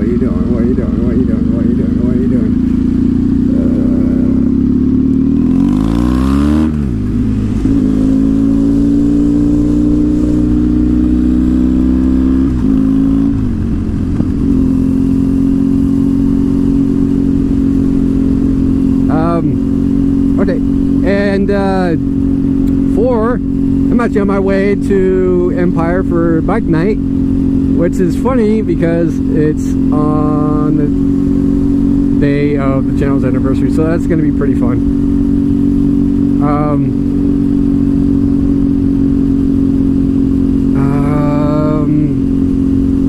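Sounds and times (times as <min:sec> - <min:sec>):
motorcycle engine running: 0:00.0 - 0:43.0.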